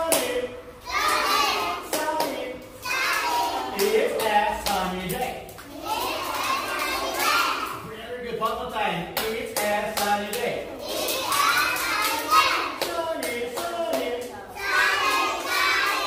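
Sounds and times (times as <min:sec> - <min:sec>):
children calling out together: 0:02.7 - 0:03.8, 0:05.7 - 0:07.8, 0:10.7 - 0:12.8, 0:14.5 - 0:16.0
hand claps: 0:03.1 - 0:06.6, 0:09.2 - 0:10.5, 0:11.1 - 0:14.3.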